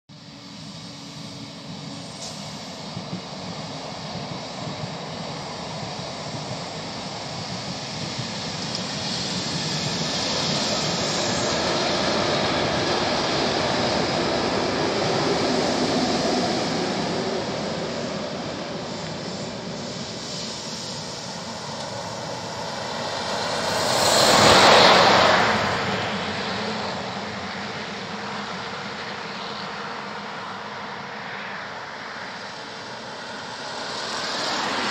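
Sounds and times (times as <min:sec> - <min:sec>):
train wheels rumbling on rails: 0:00.1 - 0:34.9
brief rushing swell: 0:09.5 - 0:27.2.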